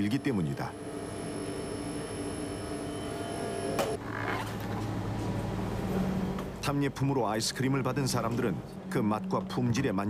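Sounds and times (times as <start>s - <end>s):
machine hum with held tones: 0.0s - 4.2s.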